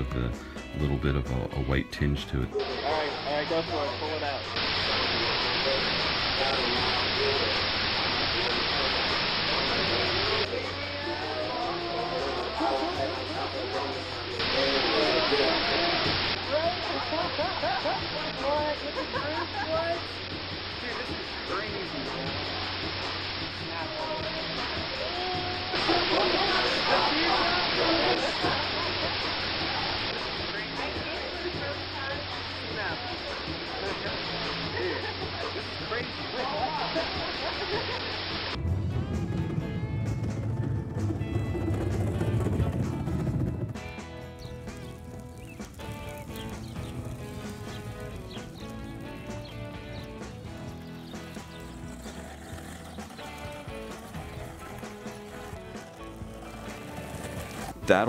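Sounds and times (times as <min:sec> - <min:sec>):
background music: 0:00.0 - 0:58.0
low rumble: 0:38.5 - 0:49.2.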